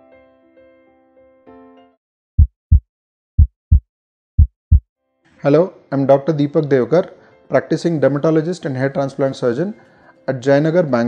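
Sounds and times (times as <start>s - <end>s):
heartbeat double thumps: 2.4s - 2.8s, 3.4s - 4.8s.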